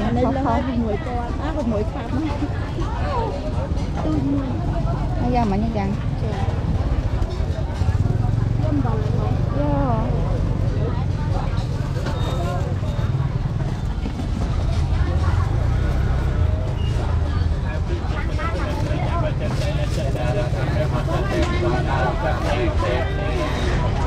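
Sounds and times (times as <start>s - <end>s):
low rumble of traffic: 0.0s - 24.0s
people talking over one another: 0.0s - 24.0s.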